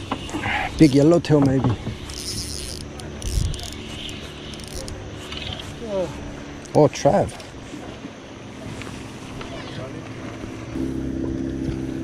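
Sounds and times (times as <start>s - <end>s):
fishing reel being cranked: 0.7s - 5.8s
low steady hum: 7.6s - 12.0s.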